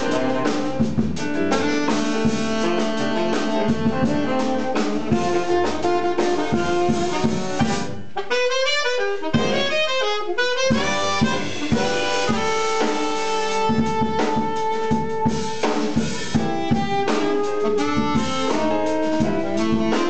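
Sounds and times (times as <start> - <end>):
upright double bass: 0.0 - 8.2, 9.3 - 9.9, 10.7 - 20.0
drum kit: 0.0 - 20.0
saxophones playing: 0.0 - 20.0.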